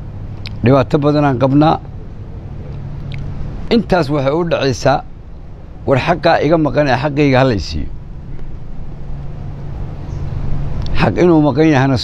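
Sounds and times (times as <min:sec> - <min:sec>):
faint constant hum: 0:00.0 - 0:12.0
low background rumble: 0:00.0 - 0:12.0.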